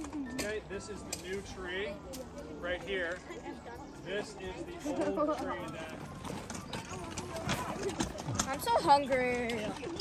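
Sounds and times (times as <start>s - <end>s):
footsteps on dirt: 4.3s - 10.0s
wagon clicking and knocking: 4.9s - 10.0s.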